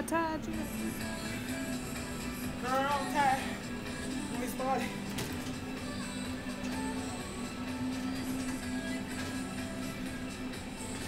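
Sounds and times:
background music: 0:00.0 - 0:11.0
stair-climber machine humming: 0:00.0 - 0:11.0.

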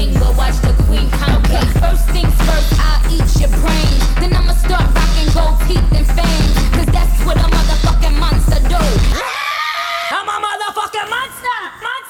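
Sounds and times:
bass-heavy backing track: 0:00.0 - 0:09.2
high solo voice singing: 0:00.0 - 0:11.3.

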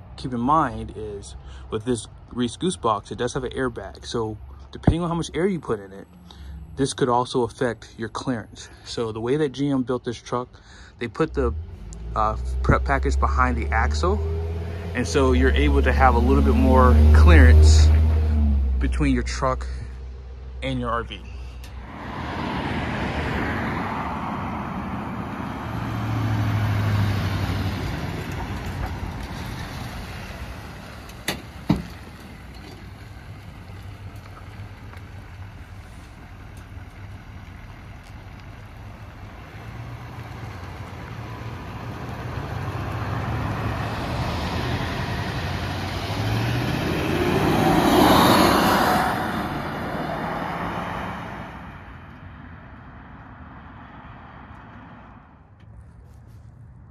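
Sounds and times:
pickup diesel engine passing: 0:00.0 - 0:09.5, 0:10.6 - 0:55.4.

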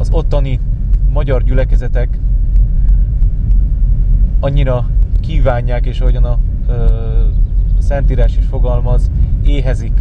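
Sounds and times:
car cabin road and engine rumble: 0:00.0 - 0:10.0.

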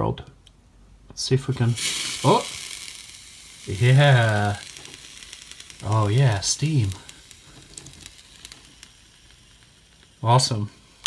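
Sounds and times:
small crackles: 0:00.3 - 0:11.0
water sizzling on hot rocks: 0:01.4 - 0:11.0.

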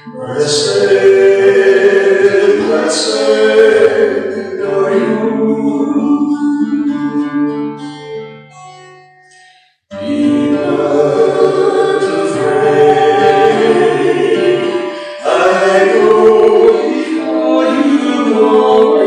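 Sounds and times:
woman and man singing duet: 0:00.0 - 0:07.9, 0:10.0 - 0:19.0
strummed acoustic guitar: 0:00.0 - 0:19.0.

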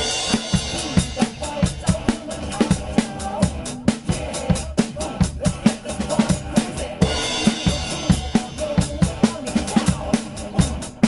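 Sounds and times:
drum kit groove: 0:00.0 - 0:11.0
pop backing track: 0:00.0 - 0:11.0.

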